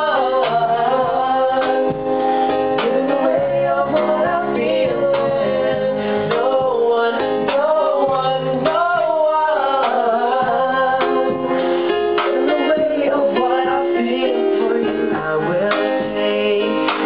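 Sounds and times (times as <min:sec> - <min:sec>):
guitar chords: 0:00.0 - 0:17.0
man singing: 0:00.0 - 0:17.0.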